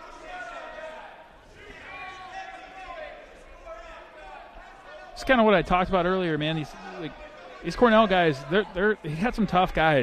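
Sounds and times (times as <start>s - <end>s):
broadcast commentary: 1.8s - 10.0s.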